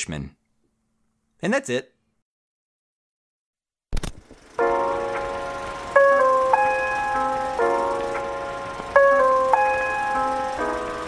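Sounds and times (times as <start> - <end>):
melodic tune in held chords: 4.6 - 11.0.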